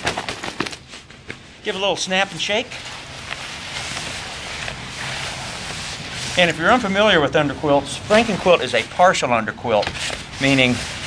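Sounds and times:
hammock fabric rustling: 0:00.0 - 0:11.0.

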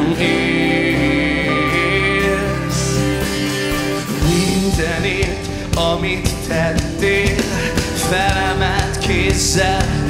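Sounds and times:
electric bass guitar: 0:00.0 - 0:10.0
strummed acoustic guitar: 0:00.0 - 0:10.0.

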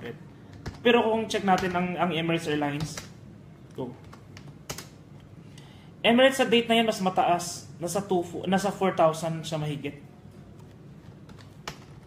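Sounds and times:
keyboard keystrokes: 0:10.6 - 0:12.0.

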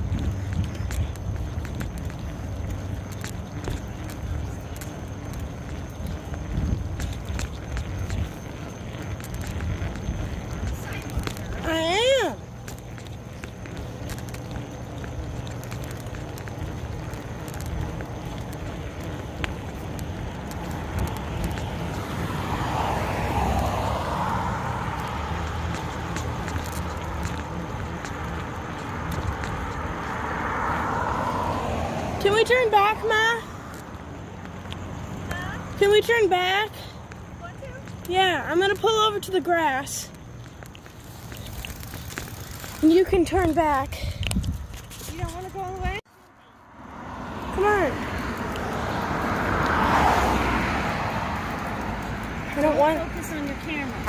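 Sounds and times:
wind on microphone: 0:00.0 - 0:02.0, 0:06.0 - 0:08.6, 0:43.0 - 0:46.0
bicycle riding on pavement: 0:00.0 - 0:54.0.

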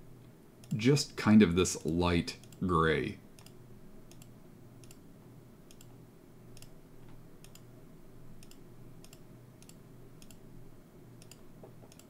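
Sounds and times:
low steady hum: 0:00.0 - 0:12.0
computer mouse clicks: 0:00.6 - 0:00.8, 0:02.4 - 0:02.6, 0:03.4 - 0:05.0, 0:05.7 - 0:07.7, 0:08.4 - 0:10.4, 0:11.2 - 0:12.0.

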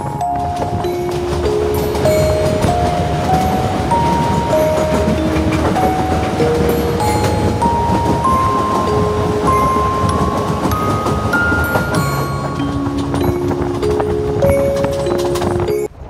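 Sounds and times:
slow melody of held notes: 0:00.0 - 0:15.9
train rumbling along track: 0:00.0 - 0:16.0.

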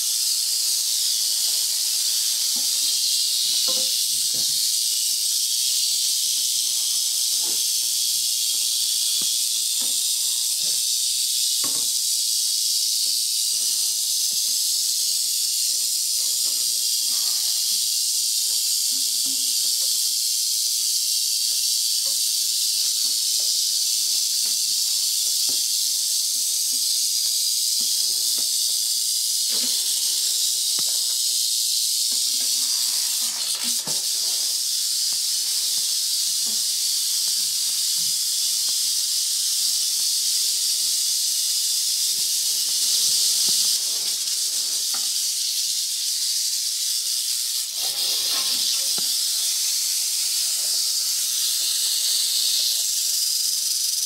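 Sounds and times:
rattlesnake rattling: 0:00.0 - 0:54.0.

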